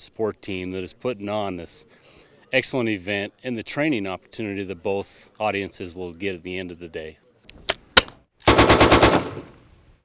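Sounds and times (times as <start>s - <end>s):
machine gun burst with echo: 8.5s - 9.6s.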